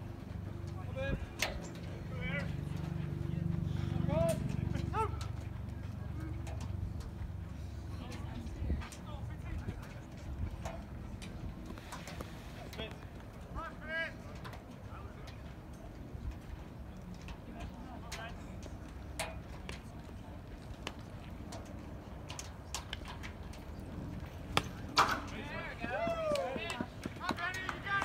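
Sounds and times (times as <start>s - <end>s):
low outdoor rumble: 0.0s - 28.0s
voices calling out and chattering: 0.0s - 28.0s.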